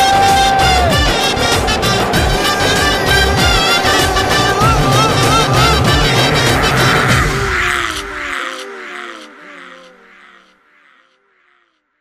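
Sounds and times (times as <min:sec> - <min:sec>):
echoing call-like sound: 0:00.0 - 0:10.2.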